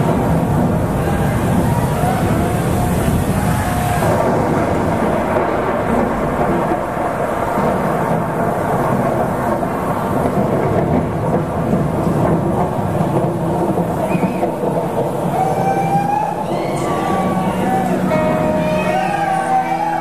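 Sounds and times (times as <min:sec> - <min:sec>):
distorted guitar drone: 0:16.1 - 0:20.0.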